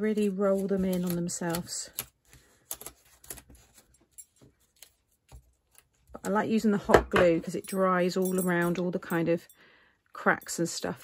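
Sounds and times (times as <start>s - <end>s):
small clicks and paper rustles: 0.1s - 6.4s.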